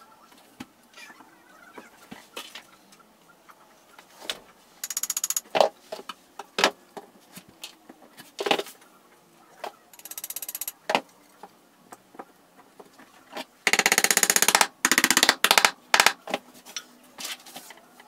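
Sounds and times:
screwdriver clicking: 0:04.8 - 0:05.4, 0:10.0 - 0:10.8, 0:13.7 - 0:16.2.

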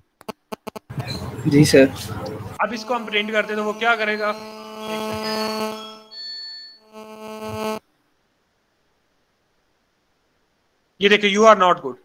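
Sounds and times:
electronic buzzing hum: 0:00.2 - 0:01.4, 0:02.4 - 0:06.2, 0:06.8 - 0:07.8
high whine: 0:00.3 - 0:07.8.

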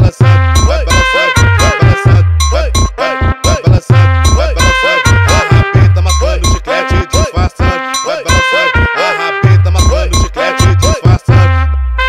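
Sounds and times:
drum hits: 0:00.0 - 0:07.5, 0:09.5 - 0:11.4
swooping synth melody: 0:00.3 - 0:12.0.

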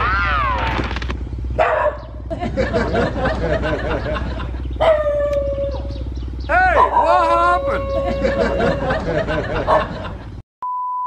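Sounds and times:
dog howling: 0:04.8 - 0:09.8.

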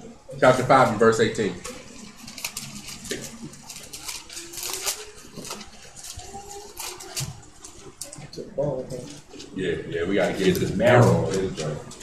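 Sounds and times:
thin pages flicking: 0:01.6 - 0:08.2.

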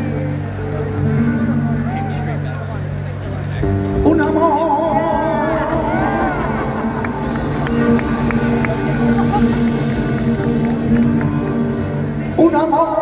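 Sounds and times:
strummed acoustic guitars: 0:00.0 - 0:12.7
crowd noise: 0:00.0 - 0:13.0
person singing: 0:04.0 - 0:06.8, 0:12.3 - 0:13.0.

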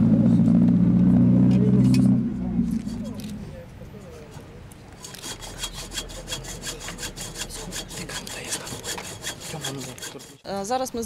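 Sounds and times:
hand saw cutting pipe: 0:05.0 - 0:10.4.

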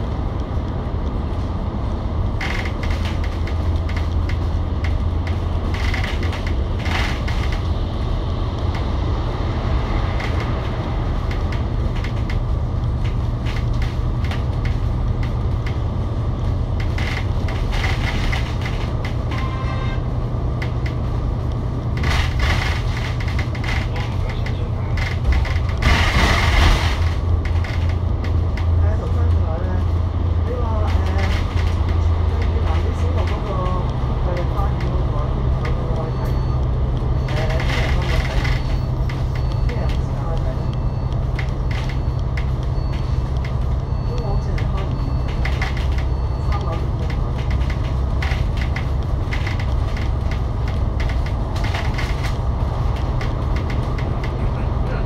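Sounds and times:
bus engine droning: 0:00.0 - 0:55.0
road and cabin noise: 0:00.0 - 0:55.0.

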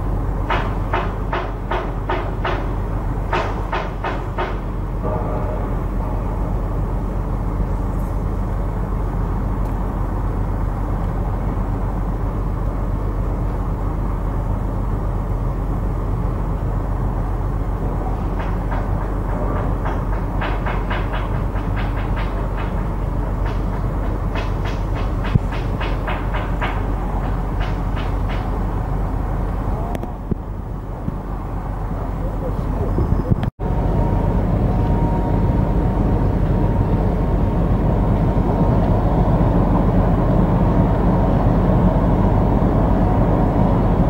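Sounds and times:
steady low rumble: 0:00.0 - 0:44.0.

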